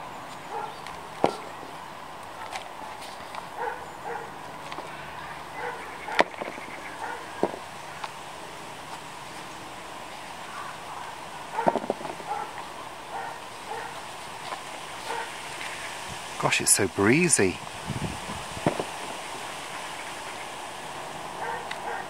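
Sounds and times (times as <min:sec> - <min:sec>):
wind on microphone: 0:15.1 - 0:16.4, 0:17.5 - 0:20.4.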